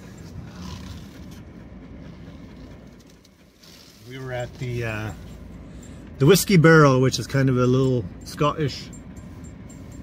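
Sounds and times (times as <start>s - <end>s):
dog panting: 0.0s - 6.5s
car engine rumble from inside: 0.0s - 10.0s.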